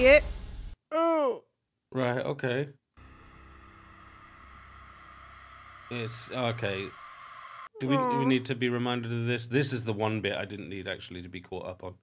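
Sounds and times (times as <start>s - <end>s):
sustained tones: 3.0s - 8.0s.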